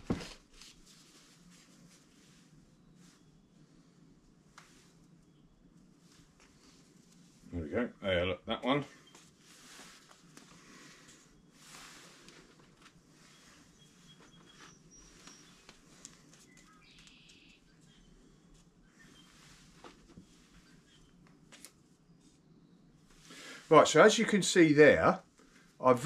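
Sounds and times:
faint bird chirps: 0:02.2 - 0:07.4, 0:08.6 - 0:10.0, 0:13.1 - 0:23.6.

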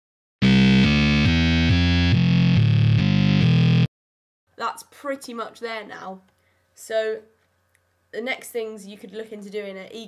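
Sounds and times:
distorted synth bass line: 0:00.4 - 0:03.9.

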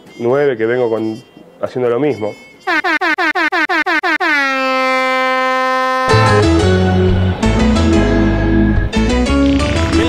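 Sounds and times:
air horn blasts: 0:00.0 - 0:07.3.

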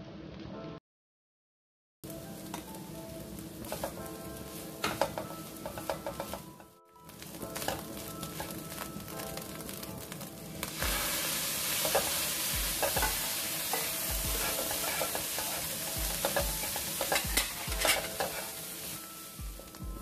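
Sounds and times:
shrimp sizzling in oiled pan: 0:02.1 - 0:20.0.

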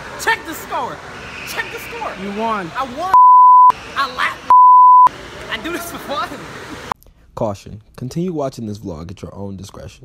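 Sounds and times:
censor bleeps: 0:03.2 - 0:03.7, 0:04.5 - 0:05.1.

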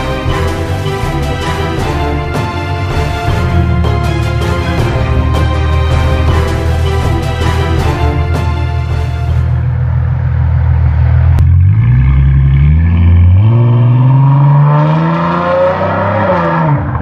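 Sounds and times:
car engine accelerating: 0:00.0 - 0:17.0.

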